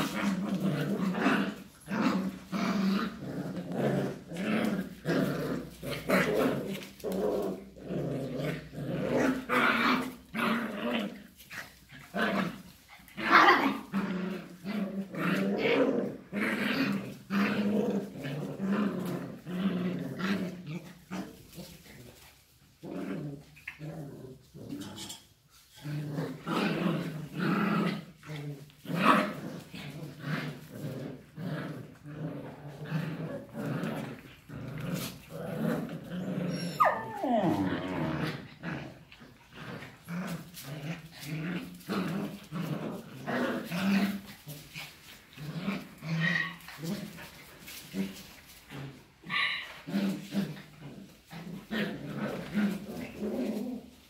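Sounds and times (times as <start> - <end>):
dogs play-growling: 0.0 - 54.0
dog high cry: 36.5 - 37.6.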